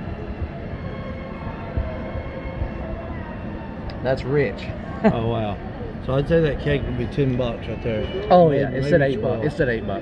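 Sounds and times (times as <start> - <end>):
steady low rumble: 0.0 - 6.5
distant voices: 0.0 - 10.0
faint music: 0.0 - 10.0.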